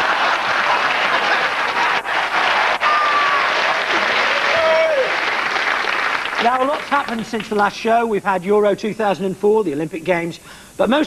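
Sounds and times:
voices rising over applause: 0:00.0 - 0:07.6
audience applauding: 0:00.0 - 0:07.7.

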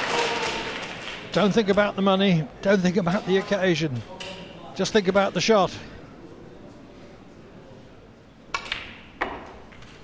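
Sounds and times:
low hush of a hall: 0:03.8 - 0:10.0.

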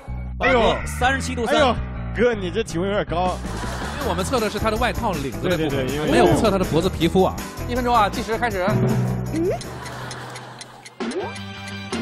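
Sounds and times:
clock ticking: 0:09.3 - 0:12.0.

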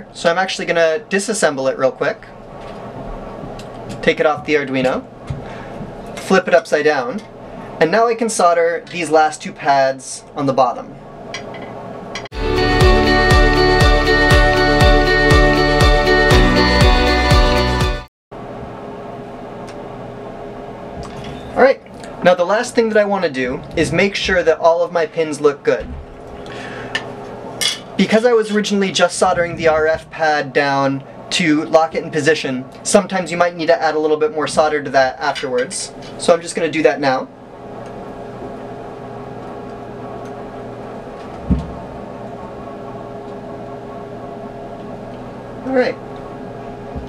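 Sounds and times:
faint constant hum: 0:00.0 - 0:12.3, 0:18.4 - 0:47.0
low thump: 0:41.4 - 0:41.9.

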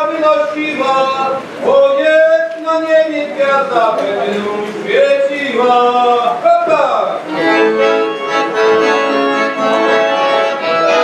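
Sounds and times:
accordion playing folk melody: 0:07.2 - 0:11.0.

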